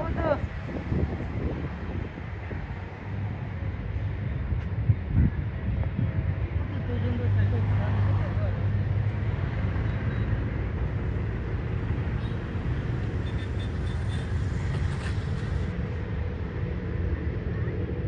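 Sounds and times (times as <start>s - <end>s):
voices: 0.0s - 0.6s
outdoor background noise: 0.0s - 18.0s.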